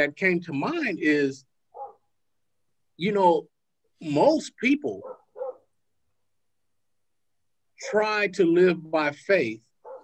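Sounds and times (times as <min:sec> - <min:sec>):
man speaking: 0:00.0 - 0:01.5, 0:03.0 - 0:05.1, 0:07.8 - 0:09.7.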